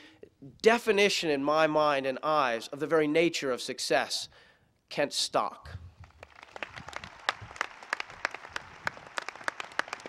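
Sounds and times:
crowd applauding: 0:06.1 - 0:10.0.

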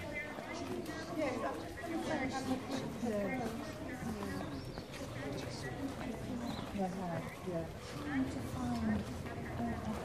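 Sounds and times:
footsteps on pavement: 0:00.0 - 0:10.0
people chatting: 0:00.0 - 0:10.0.

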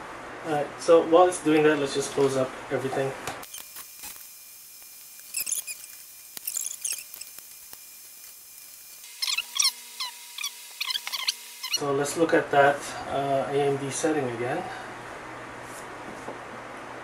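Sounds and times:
screws squeaking: 0:03.4 - 0:04.2, 0:05.0 - 0:11.8.

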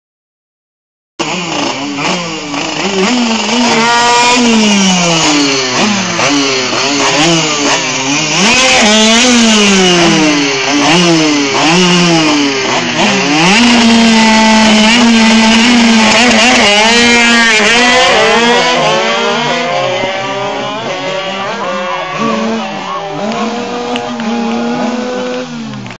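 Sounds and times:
two-stroke moped engines revving: 0:01.2 - 0:26.0.

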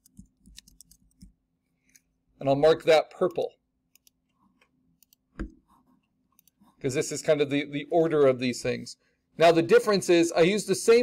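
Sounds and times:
faint keyboard typing: 0:00.0 - 0:02.0, 0:03.2 - 0:06.8.

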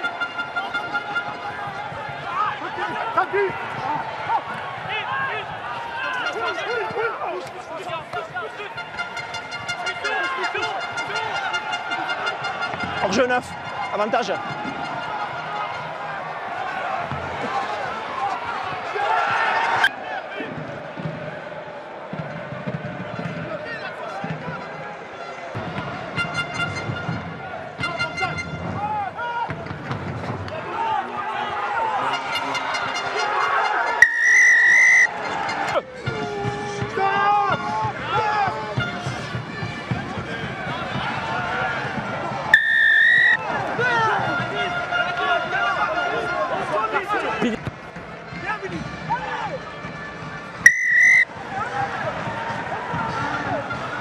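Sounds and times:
stadium crowd noise: 0:00.0 - 0:54.0
referee's whistle blasts: 0:34.0 - 0:35.1, 0:42.5 - 0:43.4, 0:50.6 - 0:51.3.

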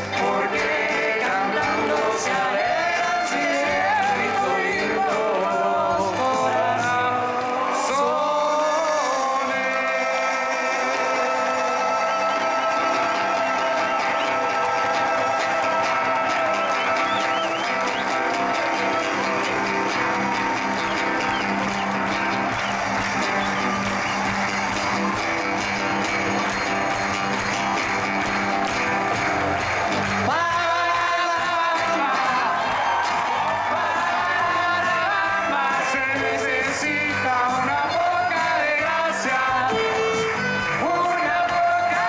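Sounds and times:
guitar: 0:00.0 - 0:42.0
live band instrumental music: 0:00.0 - 0:42.0.

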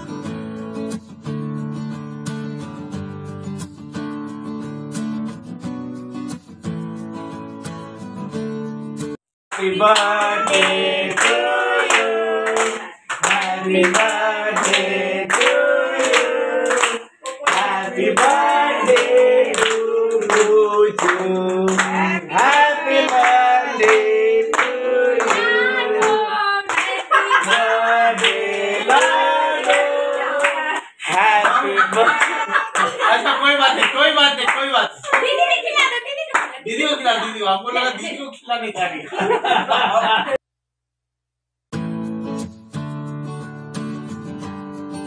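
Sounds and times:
group of people singing: 0:09.5 - 0:33.2
rhythmic hand clapping: 0:09.5 - 0:36.6.

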